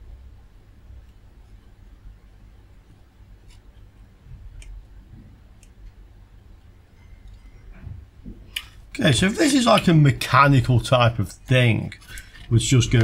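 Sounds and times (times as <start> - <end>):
faint clicks of probe tips: 4.5 - 6.0, 11.9 - 12.5.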